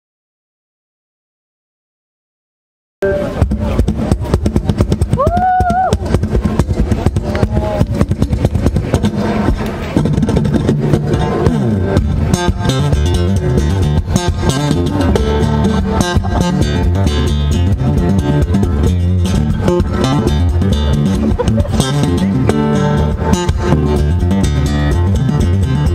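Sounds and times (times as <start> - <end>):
percussive fingerstyle guitar: 3.2 - 25.9.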